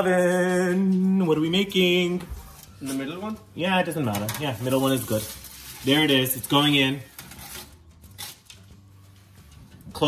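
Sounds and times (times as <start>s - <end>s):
baking sheet scraping on oven rack: 4.1s - 8.4s.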